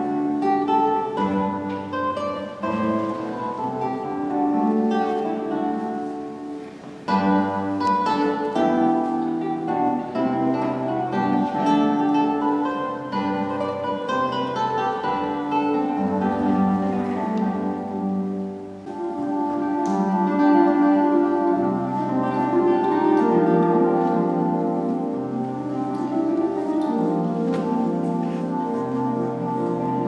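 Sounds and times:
classical guitar fingerpicked: 0.0s - 30.0s.

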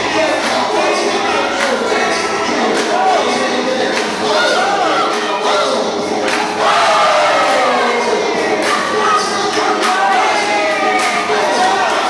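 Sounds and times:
crowd shouting and cheering: 0.0s - 12.0s
loud music: 0.0s - 12.0s.

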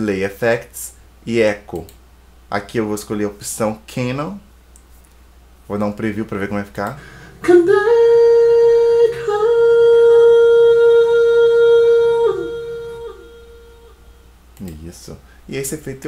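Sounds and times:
man singing auto-tuned high note: 7.3s - 14.8s.

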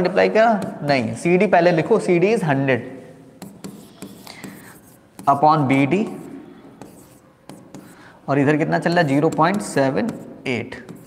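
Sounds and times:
stylus scratching on screen: 3.4s - 11.0s.

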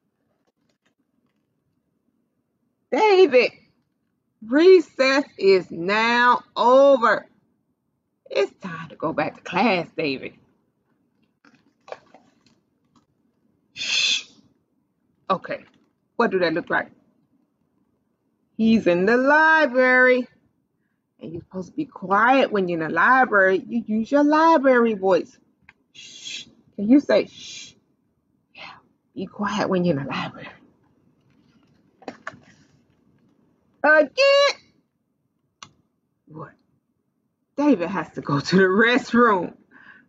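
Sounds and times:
book page turning: 11.4s - 13.1s, 31.2s - 33.4s.

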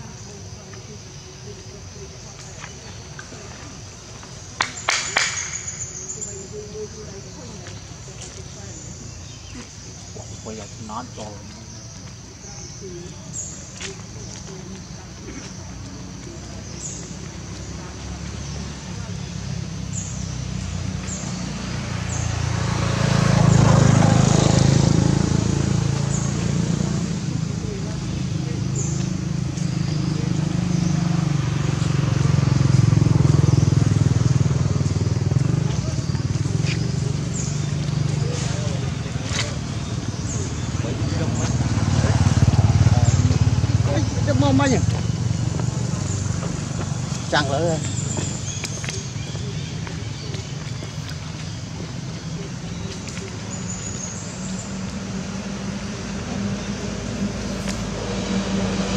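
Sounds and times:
motor vehicle engine hum passing: 0.0s - 58.9s.

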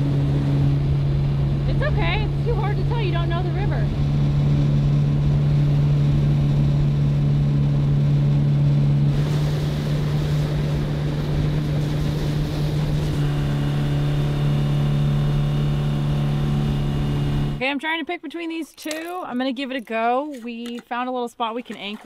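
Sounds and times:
outboard motor running: 0.0s - 17.6s
water rushing along hull: 0.0s - 17.6s.

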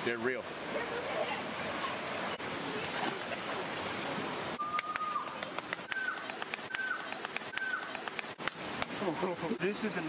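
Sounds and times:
water splashing: 0.0s - 10.0s
bird whistling: 5.9s - 8.0s.

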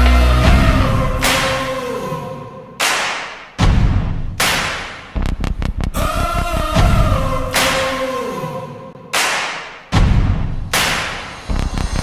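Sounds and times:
deep hit: 0.0s - 1.7s, 3.6s - 4.4s
background music with percussion: 0.0s - 1.8s, 9.2s - 12.0s.

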